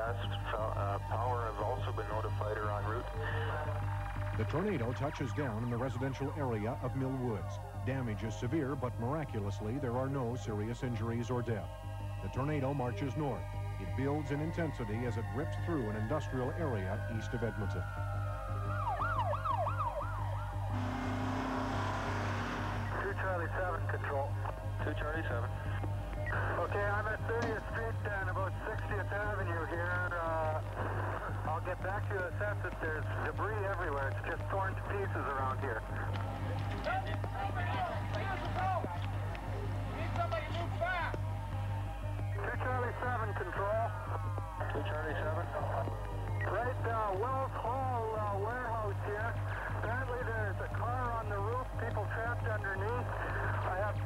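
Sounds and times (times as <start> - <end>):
emergency sirens wailing: 12.2 - 24.5, 25.2 - 48.8
steady low hum: 19.7 - 54.0.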